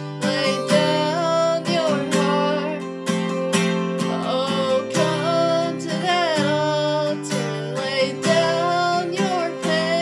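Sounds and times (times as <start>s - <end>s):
woman singing: 0.0s - 3.1s, 3.8s - 10.0s
strummed acoustic guitar: 0.0s - 10.0s.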